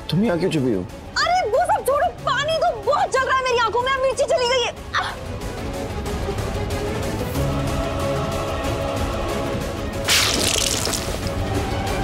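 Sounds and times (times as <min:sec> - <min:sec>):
background music: 0:00.0 - 0:12.0
water splash: 0:10.0 - 0:11.3.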